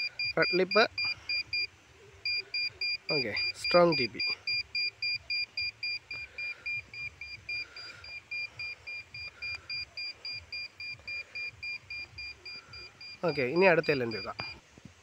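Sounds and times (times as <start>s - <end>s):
satellite meter high beeps: 0.0s - 14.6s.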